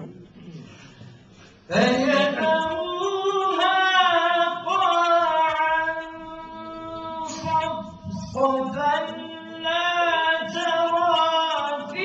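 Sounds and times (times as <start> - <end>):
man chanting melodically: 1.7 - 12.0.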